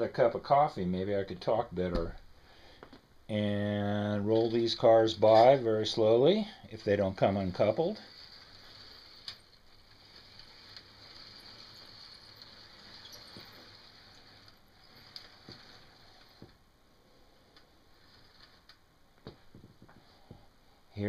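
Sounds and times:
toy train cars rolling on track: 3.5 - 16.6, 17.6 - 18.8.

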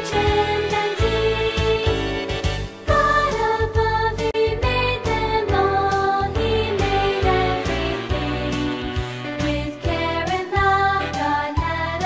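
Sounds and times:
children's song: 0.0 - 12.0.

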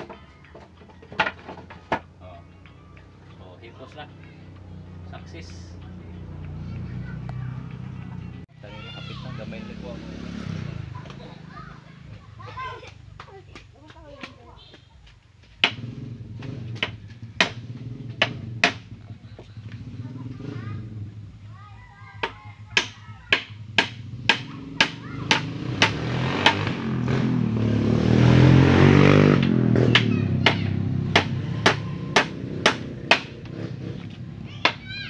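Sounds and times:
engine: 15.6 - 35.0.

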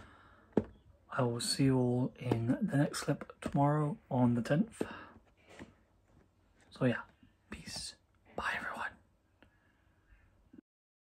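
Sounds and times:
man whispering: 6.7 - 9.1.

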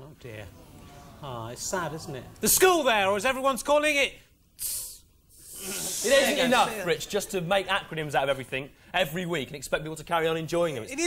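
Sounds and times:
hiss of breath: 4.6 - 6.2
breath drawn in: 4.6 - 6.4
person speaking: 4.6 - 8.6.

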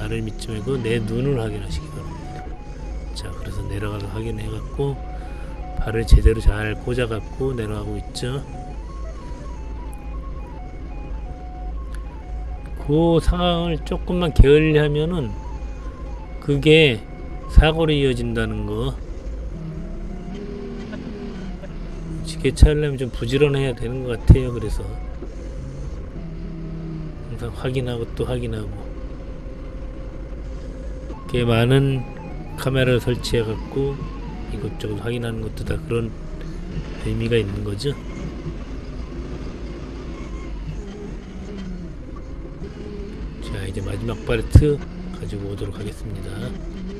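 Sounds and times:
forklift engine running: 0.0 - 46.9.

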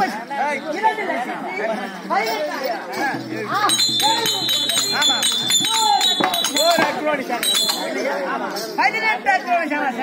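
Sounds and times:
several people talking: 0.0 - 10.0.

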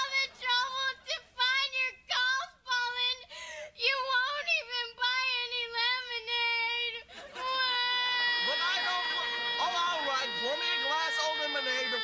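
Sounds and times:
girl crying loudly: 7.4 - 12.0.

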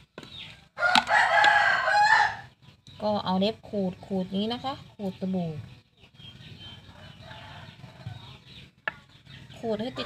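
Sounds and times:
rooster crowing: 0.8 - 2.5, 6.9 - 8.3
people talking: 3.0 - 5.8, 9.5 - 10.0.

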